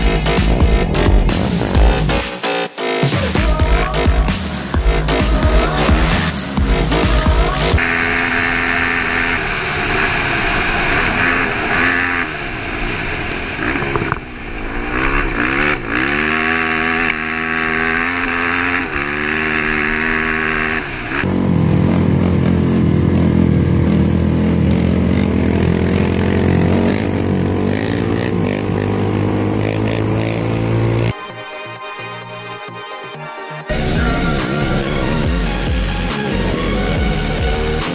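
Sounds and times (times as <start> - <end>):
engine accelerating through gears: 0.0 - 2.9, 3.5 - 31.1, 33.7 - 37.9.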